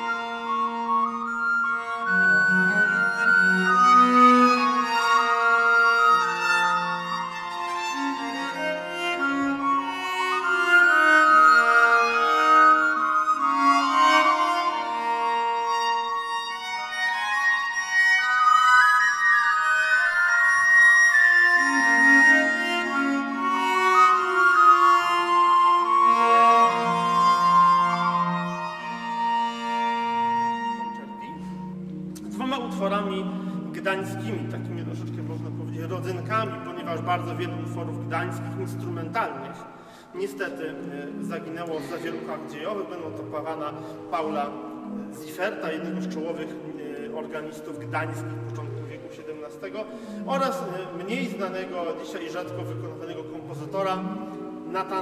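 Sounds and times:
baroque violin: 0:00.0 - 0:55.0
bowed viols: 0:00.0 - 0:55.0
harpsichord: 0:00.0 - 0:55.0.

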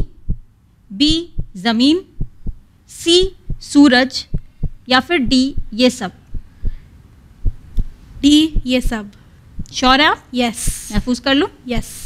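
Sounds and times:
low heartbeat-like thuds: 0:00.0 - 0:01.6, 0:02.2 - 0:03.7, 0:04.3 - 0:06.8, 0:07.4 - 0:09.9, 0:10.6 - 0:11.2
faint hum: 0:00.0 - 0:12.0.

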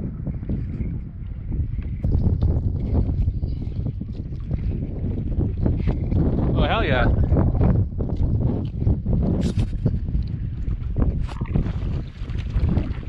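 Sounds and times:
wind buffeting microphone: 0:00.0 - 0:13.0
lake water slapping and splashing: 0:00.3 - 0:07.1, 0:08.1 - 0:13.0.

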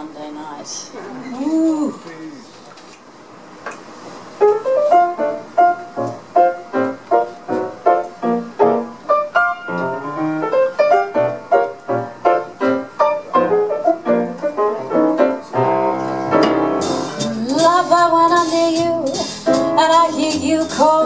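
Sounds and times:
jazz piano chords and notes: 0:03.5 - 0:21.0
cymbals: 0:16.4 - 0:21.0.

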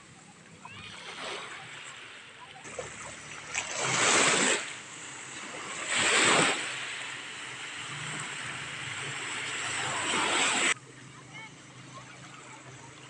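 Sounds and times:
small waves washing over sand: 0:00.0 - 0:11.0.

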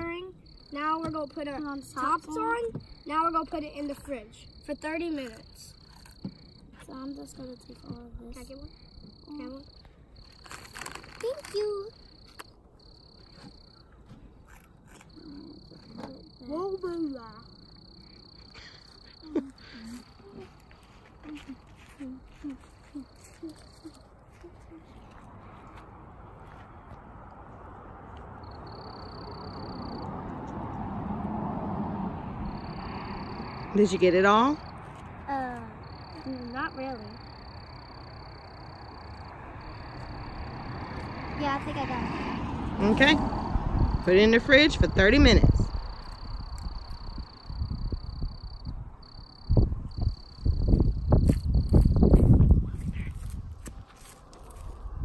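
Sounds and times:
child's wordless voice: 0:00.0 - 0:05.8, 0:06.7 - 0:09.9, 0:11.1 - 0:12.2, 0:15.1 - 0:17.6, 0:19.2 - 0:25.3, 0:35.2 - 0:37.4, 0:41.2 - 0:42.7
high-pitched insect trill: 0:00.0 - 0:25.4, 0:28.4 - 0:42.6, 0:43.2 - 0:53.4.

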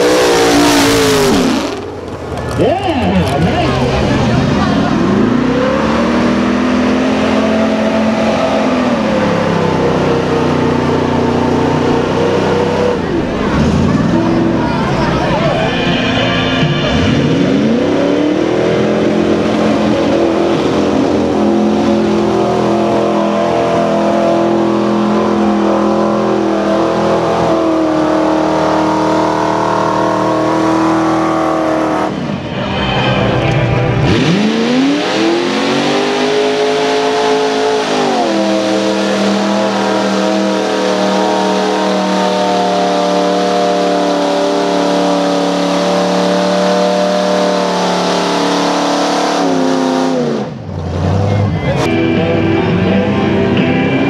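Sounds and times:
truck engines revving hard: 0:00.0 - 0:54.0.

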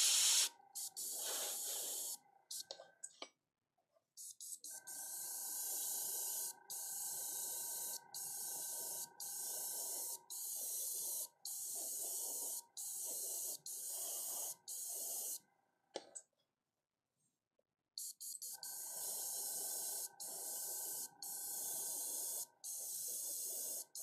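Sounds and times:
airbrush spraying hiss: 0:00.0 - 0:02.7, 0:04.2 - 0:15.4, 0:18.0 - 0:24.0.

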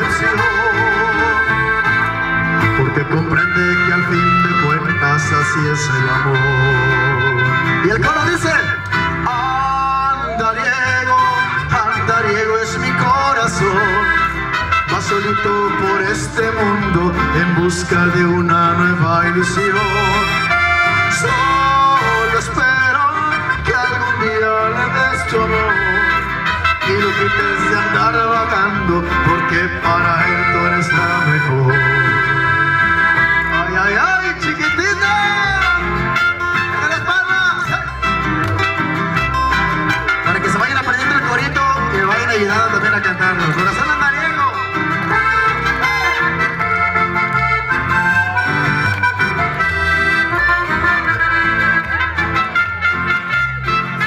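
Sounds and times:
man singing into a microphone: 0:00.0 - 0:38.0, 0:40.2 - 0:46.4
amplified instrumental accompaniment: 0:00.0 - 0:54.0.

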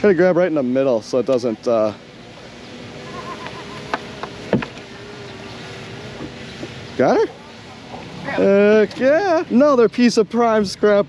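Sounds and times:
faint steady hum: 0:00.0 - 0:11.0
outdoor background noise: 0:00.0 - 0:11.0.

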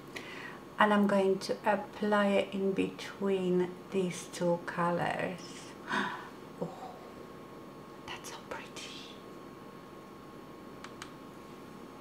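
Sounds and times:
woman whispering: 0:08.0 - 0:09.2.

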